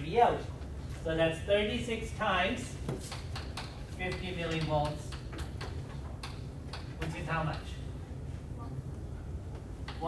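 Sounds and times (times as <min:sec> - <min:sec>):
chalk tapping on chalkboard: 0:02.9 - 0:06.9.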